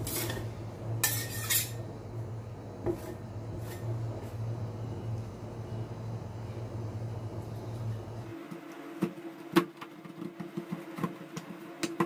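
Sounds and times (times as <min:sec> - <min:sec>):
steady motor hum: 0:00.0 - 0:12.0
metal spatula scraping steel plate: 0:01.0 - 0:01.8.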